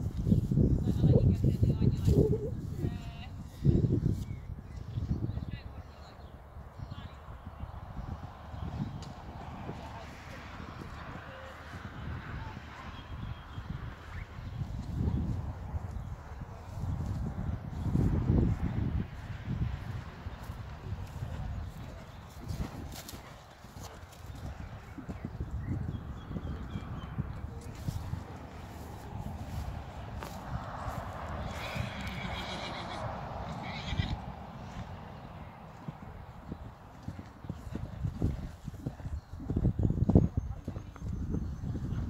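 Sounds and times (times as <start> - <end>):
horse hoofbeats on grass: 14.7 - 41.6.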